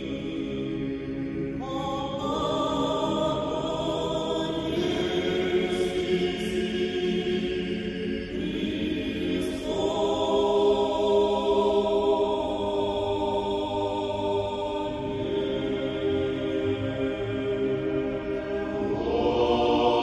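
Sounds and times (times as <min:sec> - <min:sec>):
choir singing chant: 0:00.0 - 0:20.0.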